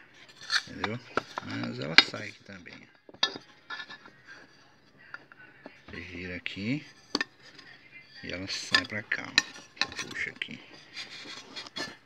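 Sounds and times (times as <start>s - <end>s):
light metal scraping and clinks: 0.0s - 12.0s.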